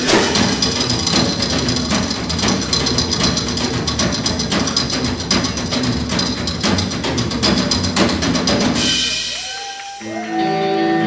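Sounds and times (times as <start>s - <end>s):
drum kit steady beat: 0.0s - 10.3s
live band music: 0.0s - 11.0s.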